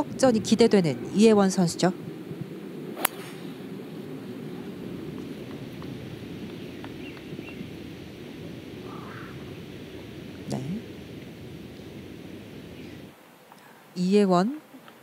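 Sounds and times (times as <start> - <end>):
open-air background noise: 0.0 - 15.0
golf club striking ball: 3.0 - 3.7.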